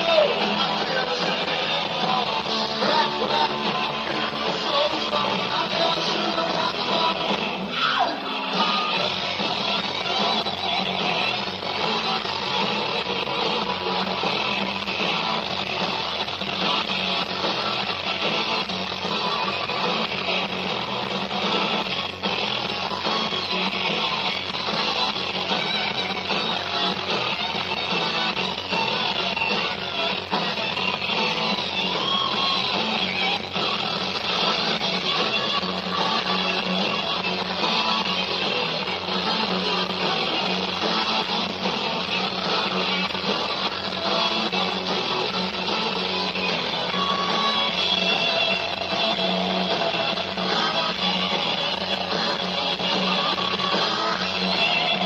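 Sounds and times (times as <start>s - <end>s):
instrumental live rock band: 0.0s - 55.0s.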